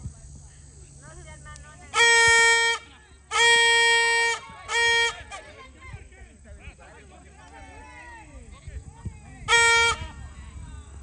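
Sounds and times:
faint voices: 0:00.0 - 0:11.0
horn blasts: 0:01.9 - 0:05.4, 0:09.5 - 0:10.2.

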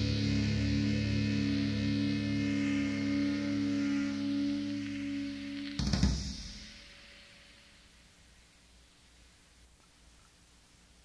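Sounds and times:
electric guitar chord ringing: 0:00.0 - 0:08.0.

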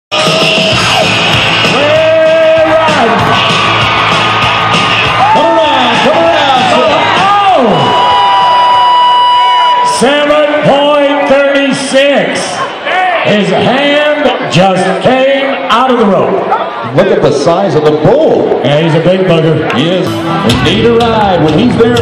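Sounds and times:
loud music: 0:00.1 - 0:08.9, 0:19.8 - 0:22.0
crowd yelling and whooping: 0:00.1 - 0:14.5.

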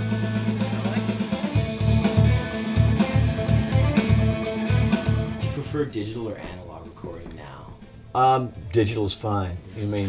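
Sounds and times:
electric guitar: 0:00.0 - 0:05.6.

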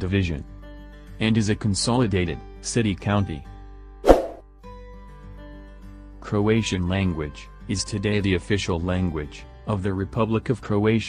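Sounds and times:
soft background music: 0:00.0 - 0:11.0
pop transition sound effect: 0:04.0 - 0:04.4.

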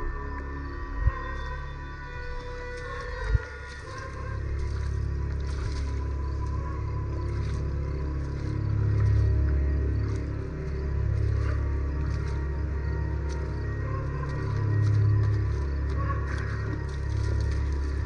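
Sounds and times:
low dark drone: 0:00.0 - 0:18.0.

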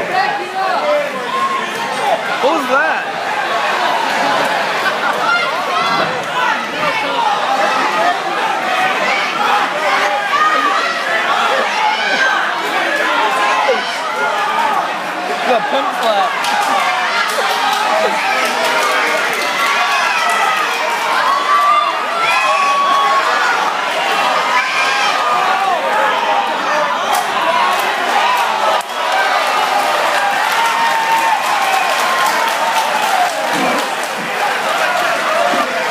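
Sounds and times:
crowd shouting and cheering: 0:00.0 - 0:35.9.

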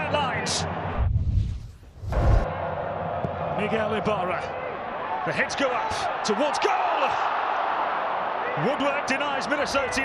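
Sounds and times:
whoosh: 0:01.0 - 0:02.5.

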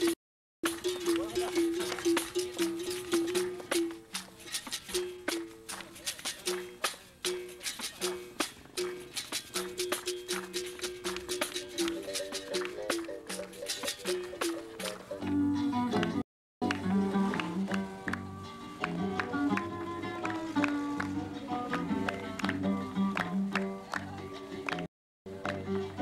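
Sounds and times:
pandeiro jingles and slaps: 0:00.0 - 0:15.4.

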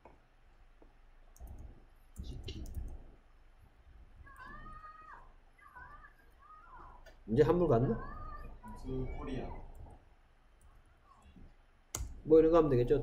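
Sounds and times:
keyboard typing: 0:01.3 - 0:03.1.

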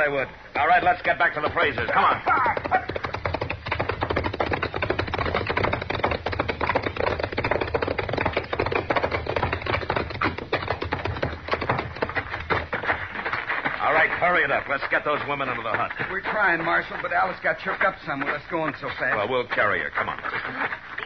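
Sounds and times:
horses galloping: 0:00.0 - 0:21.0.

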